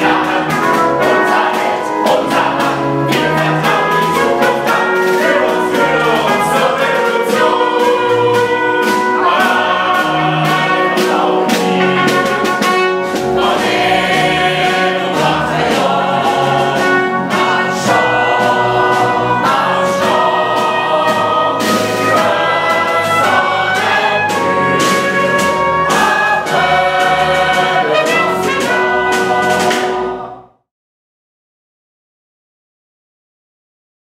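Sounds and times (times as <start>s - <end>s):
sharp percussive hits: 0.0s - 30.0s
band accompaniment: 0.0s - 30.4s
group singing with instruments: 0.0s - 30.6s.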